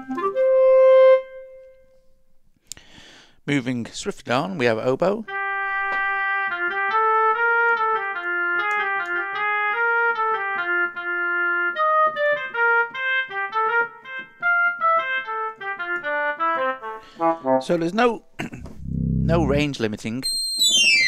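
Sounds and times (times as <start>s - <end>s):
sampled oboe melody: 0.0s - 2.1s, 5.3s - 17.8s, 18.7s - 19.7s.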